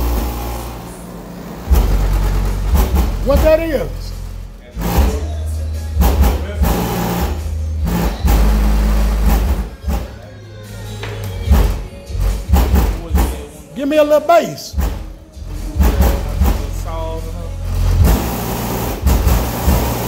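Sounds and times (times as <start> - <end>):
deep bass notes: 0.0 - 10.3, 11.4 - 20.0
song through car audio system: 0.0 - 20.0.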